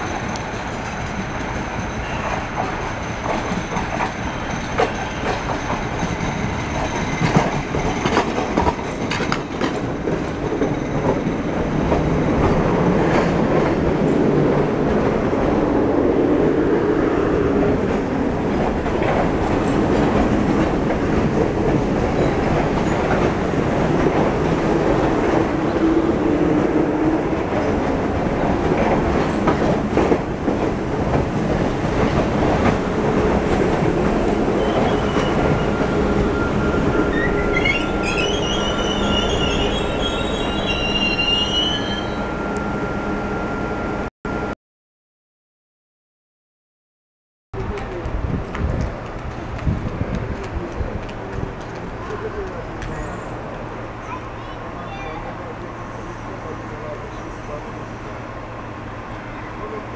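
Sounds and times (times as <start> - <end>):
train wheels rumbling on rail: 0.0 - 43.8, 47.6 - 59.9
train brakes squealing: 1.8 - 7.4, 34.6 - 44.0.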